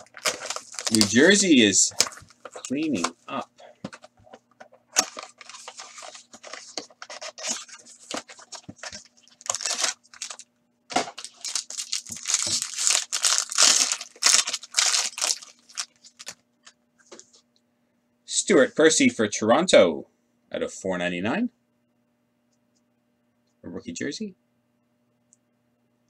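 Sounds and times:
foil wrapper tearing and crinkling: 0.0 - 3.0, 5.0 - 16.4.

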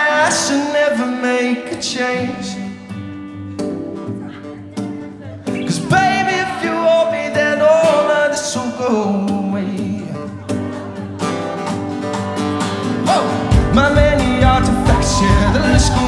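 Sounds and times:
person singing: 0.0 - 3.1, 4.2 - 11.1, 12.9 - 16.0
acoustic guitar: 0.0 - 16.0
drums: 9.3 - 16.0
bass guitar: 11.8 - 16.0.

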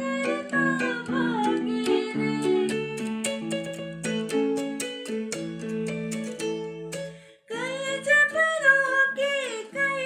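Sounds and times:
electronic keyboard melody: 0.0 - 7.1.

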